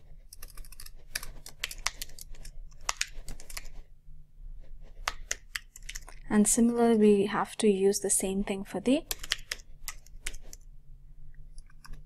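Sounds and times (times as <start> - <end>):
keyboard typing: 9.1 - 10.6.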